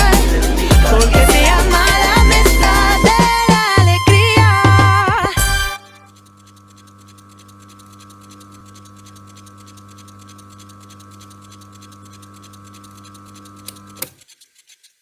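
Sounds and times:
fast crackle of small ticks: 0:06.1 - 0:15.0.

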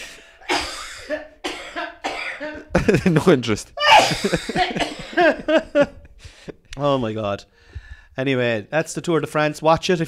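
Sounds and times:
person coughing: 0:00.0 - 0:03.0, 0:03.8 - 0:05.6.

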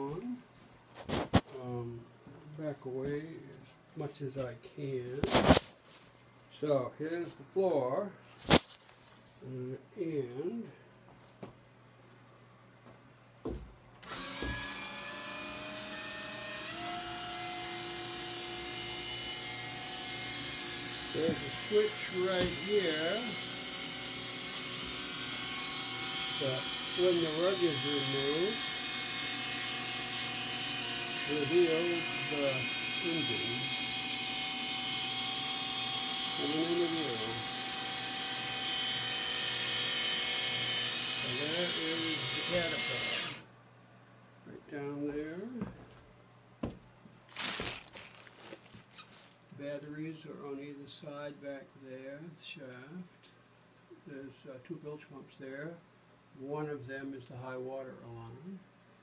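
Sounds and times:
small electric motor whirring: 0:14.1 - 0:43.4.

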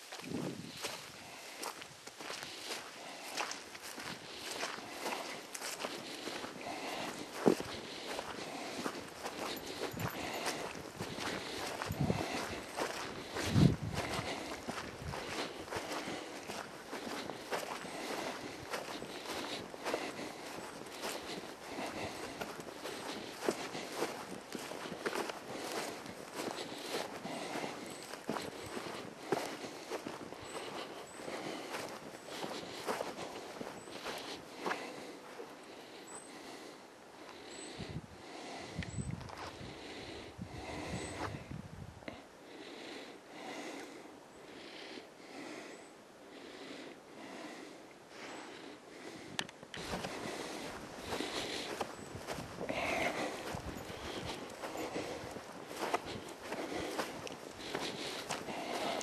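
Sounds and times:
footsteps on forest ground: 0:00.0 - 0:41.5, 0:47.2 - 0:59.0.

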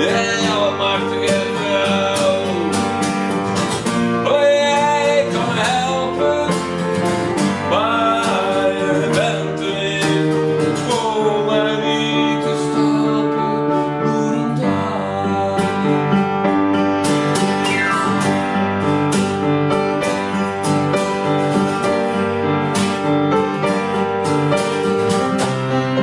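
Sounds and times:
acoustic guitar strumming: 0:00.0 - 0:26.0
keyboard playing chords: 0:00.0 - 0:26.0.

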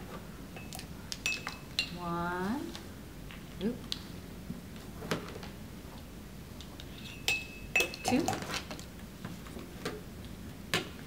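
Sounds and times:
spoon clinking against ceramic mug: 0:00.6 - 0:02.0, 0:07.1 - 0:08.5.

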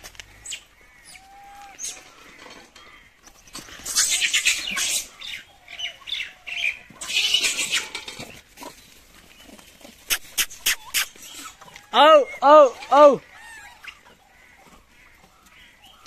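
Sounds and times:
monkeys screeching: 0:03.6 - 0:08.2, 0:10.1 - 0:14.1
monkeys squealing: 0:03.7 - 0:05.1, 0:06.1 - 0:08.0, 0:10.1 - 0:14.1.

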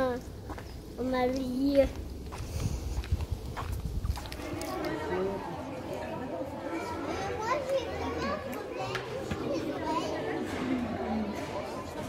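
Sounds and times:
children chattering: 0:04.2 - 0:12.0.

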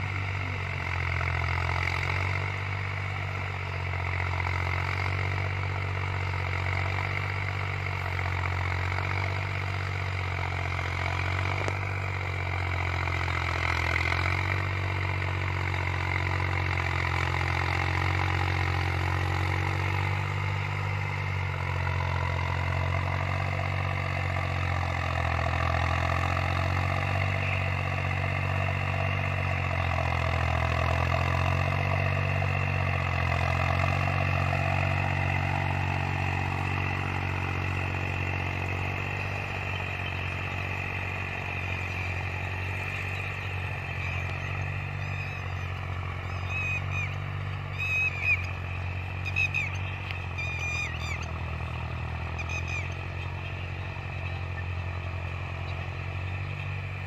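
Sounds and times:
tractor engine under load: 0:00.0 - 0:57.0.

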